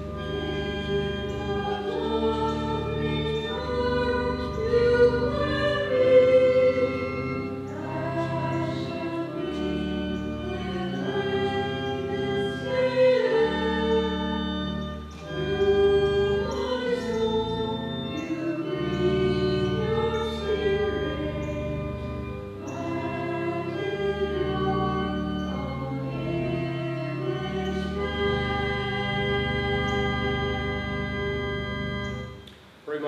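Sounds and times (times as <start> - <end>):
choir singing a hymn: 0.0 - 32.4
low organ notes: 0.0 - 33.0.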